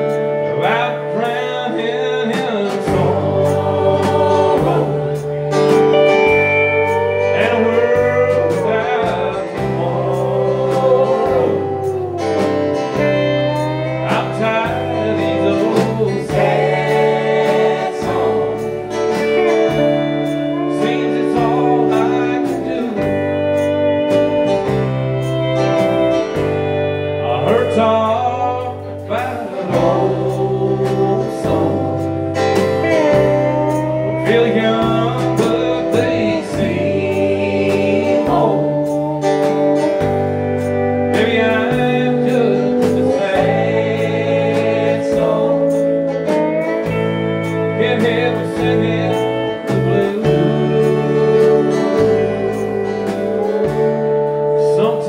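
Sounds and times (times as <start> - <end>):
acoustic guitar: 0.0 - 55.0
bass: 0.0 - 55.0
drums: 0.0 - 55.0
pedal steel guitar gliding notes: 0.0 - 55.0.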